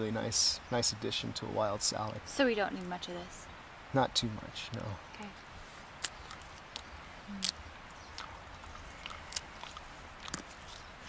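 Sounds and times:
person chewing a tough leaf: 5.9 - 11.0.

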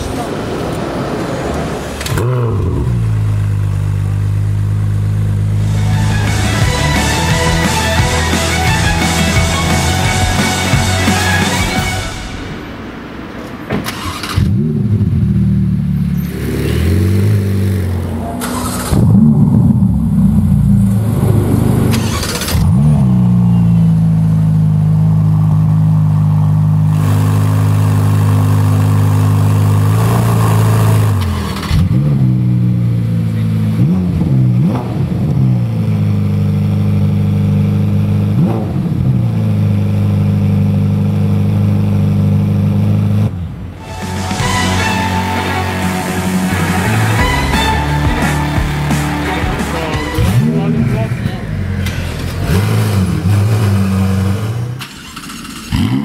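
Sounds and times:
sports car engine starting: 0.0 - 11.8, 13.4 - 56.0
engine throttle blips: 0.0 - 56.0.

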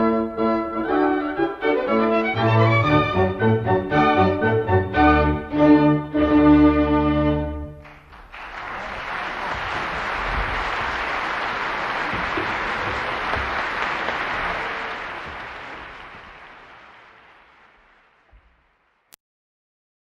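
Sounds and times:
audience applause: 7.8 - 19.0.

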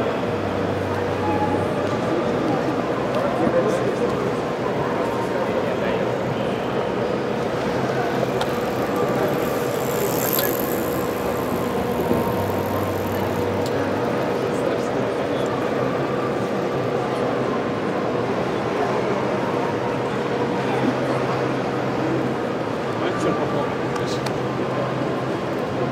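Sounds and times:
chatter of many voices: 0.0 - 25.9.

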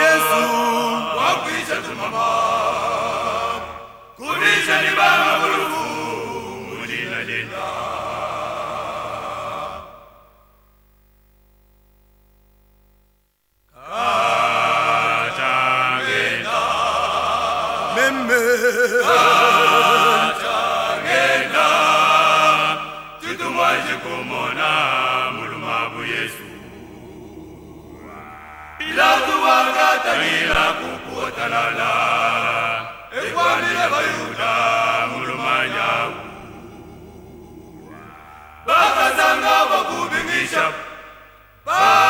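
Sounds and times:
man singing gospel melody: 0.0 - 2.3, 17.9 - 20.4
men singing a chant: 0.0 - 10.0, 13.8 - 41.0, 41.7 - 42.0.

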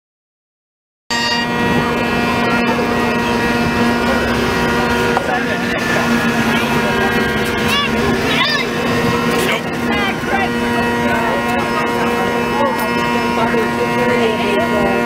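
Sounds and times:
bagpipe drone: 1.1 - 15.0.

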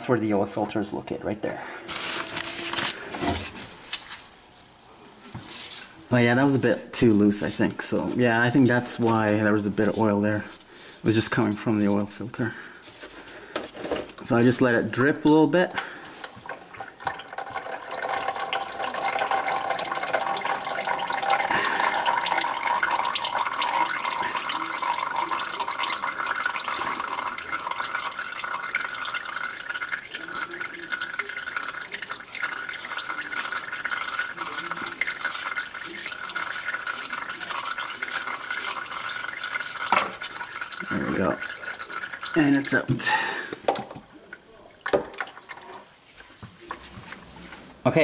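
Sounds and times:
oil running and dripping: 15.8 - 45.9.

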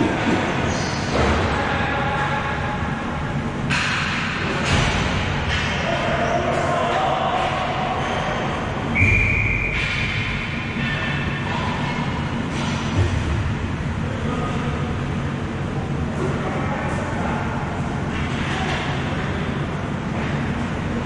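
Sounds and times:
ball hockey play rumble: 0.0 - 21.0.

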